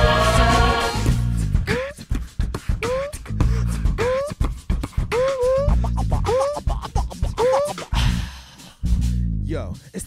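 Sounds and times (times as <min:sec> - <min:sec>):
heavy bass line: 0:00.0 - 0:02.0, 0:02.8 - 0:04.2, 0:05.1 - 0:09.8
drums: 0:00.0 - 0:10.0
swooping scratch-like lead sound: 0:05.4 - 0:08.0.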